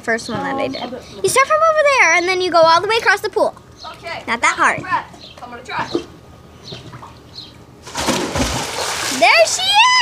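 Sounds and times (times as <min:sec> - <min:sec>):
person diving into pool splash: 0:07.8 - 0:09.5.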